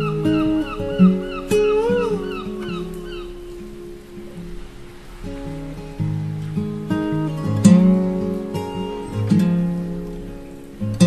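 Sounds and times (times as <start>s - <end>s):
acoustic guitar notes: 0.0s - 11.0s.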